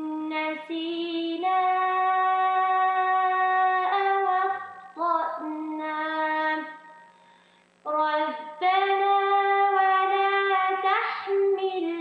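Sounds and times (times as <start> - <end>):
woman reciting melodically: 0.0 - 7.2, 7.8 - 12.0.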